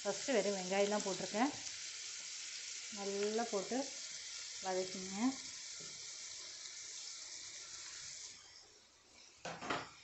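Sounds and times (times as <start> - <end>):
onions sizzling in a pan: 0.0 - 10.0.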